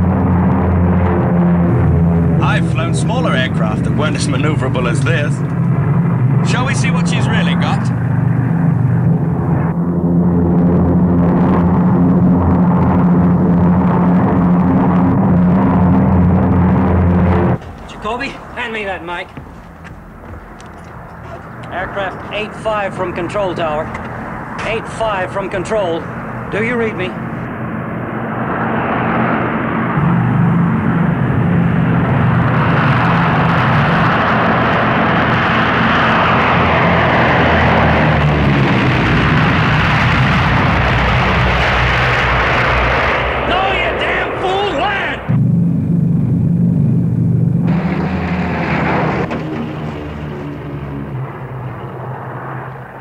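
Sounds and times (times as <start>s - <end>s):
airplane engine running: 0.0s - 53.0s.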